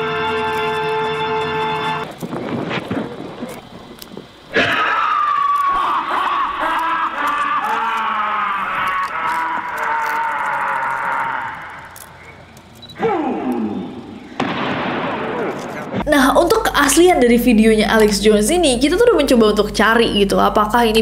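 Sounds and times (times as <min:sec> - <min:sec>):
person screaming over loudspeakers: 0:04.6 - 0:12.0, 0:13.0 - 0:14.0.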